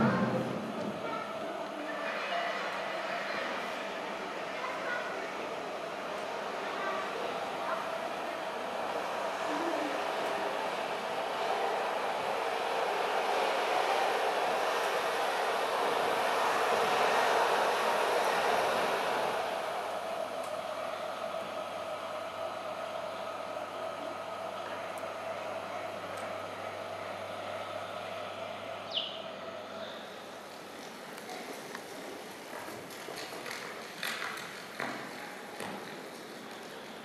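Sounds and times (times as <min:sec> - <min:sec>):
rushing rumbling noise: 0:00.0 - 0:01.3
faint hum: 0:04.6 - 0:32.4.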